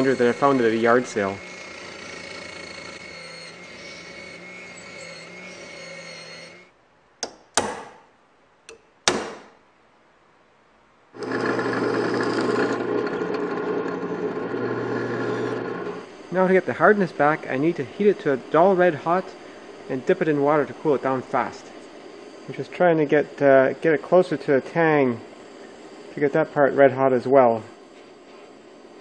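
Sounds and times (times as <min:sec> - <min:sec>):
wet wheel grinder running: 0:00.0 - 0:06.3, 0:11.2 - 0:16.1
drill press motor running: 0:00.0 - 0:06.7, 0:11.2 - 0:16.2.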